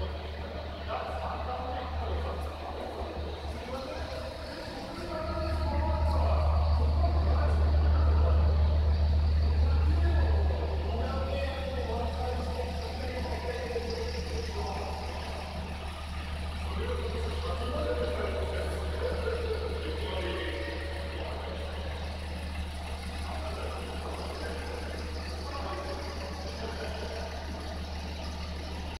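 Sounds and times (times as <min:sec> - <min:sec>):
faint wavering sounds: 0:00.0 - 0:29.0
low mechanical hum: 0:00.0 - 0:29.0.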